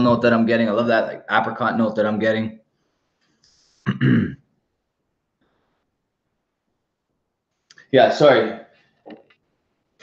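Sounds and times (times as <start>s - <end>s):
man clearing his throat: 3.9s - 4.5s.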